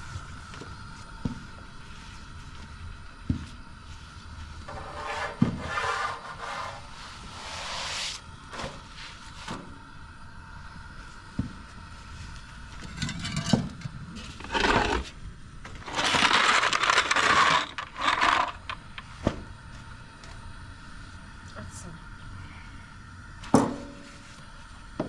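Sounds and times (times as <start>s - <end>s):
metal spatula scraping griddle: 4.7s - 8.2s, 12.8s - 15.1s, 15.8s - 18.8s.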